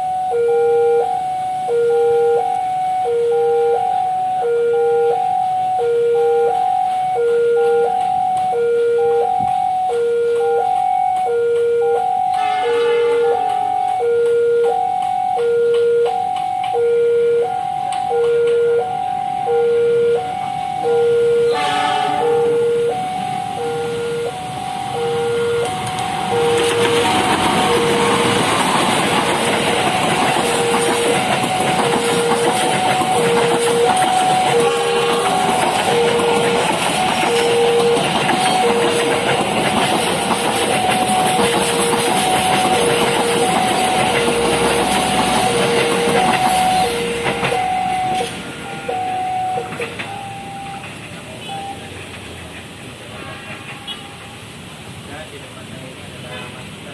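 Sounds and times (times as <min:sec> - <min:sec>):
train horn blast: 0:12.3 - 0:13.9, 0:21.4 - 0:23.0, 0:33.1 - 0:39.6
level crossing two-tone chime: 0:19.6 - 0:24.3
train wheels rumbling on rails: 0:21.5 - 0:56.9.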